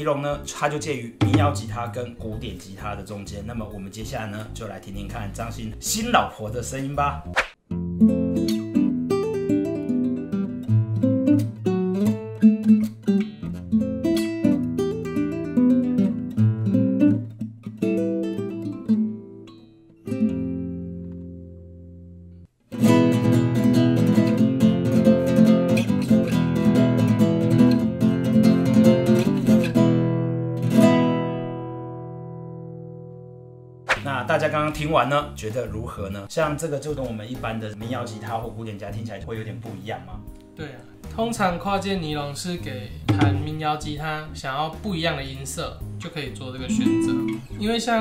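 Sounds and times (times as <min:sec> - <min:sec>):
acoustic guitar playing: 0:00.2 - 0:02.5, 0:07.2 - 0:34.3, 0:40.2 - 0:41.3, 0:42.9 - 0:44.0, 0:46.6 - 0:48.0.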